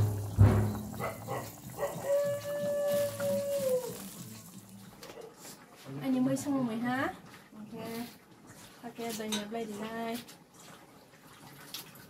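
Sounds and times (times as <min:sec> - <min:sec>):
dog howling: 0:00.9 - 0:04.2.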